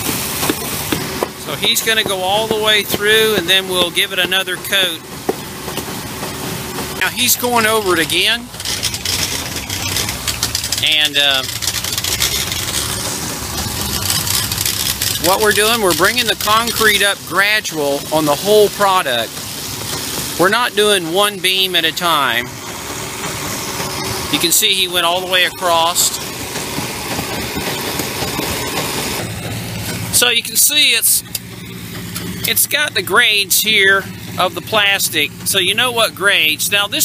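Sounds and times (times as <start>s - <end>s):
concrete pump running: 0.0s - 37.0s.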